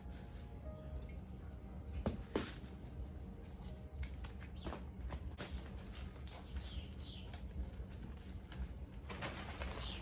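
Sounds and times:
birds calling: 0:04.0 - 0:07.9.

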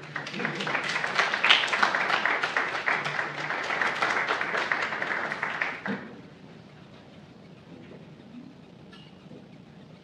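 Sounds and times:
audience applauding: 0:00.0 - 0:06.0.

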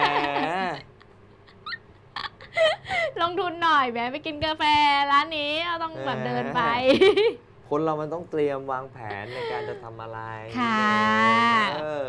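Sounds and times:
man and woman talking and laughing: 0:05.8 - 0:07.6, 0:08.9 - 0:12.0.

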